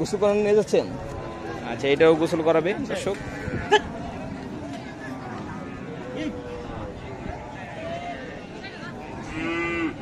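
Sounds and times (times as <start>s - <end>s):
busy livestock market noise: 0.0s - 10.0s
cattle mooing: 9.2s - 10.0s.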